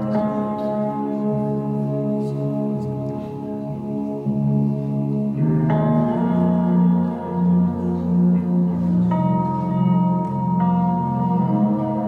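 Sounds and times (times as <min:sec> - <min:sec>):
slow instrumental music: 0:00.0 - 0:12.0.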